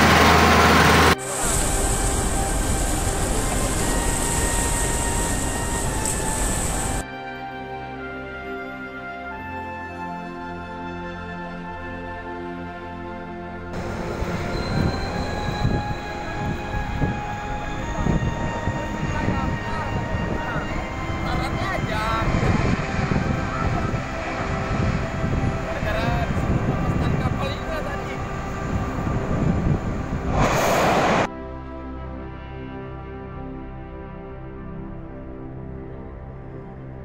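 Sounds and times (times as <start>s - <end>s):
loud rushing burst: 0.0s - 6.9s, 28.2s - 31.3s
fire low rumble: 0.0s - 7.0s, 13.8s - 31.3s.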